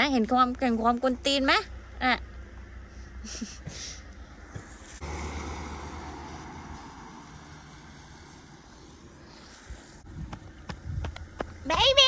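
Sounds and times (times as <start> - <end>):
van engine and tyres moving off: 4.2 - 11.8.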